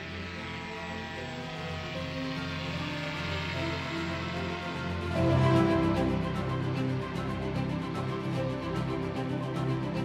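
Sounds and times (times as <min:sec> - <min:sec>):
background music with held chords: 0:00.0 - 0:10.0.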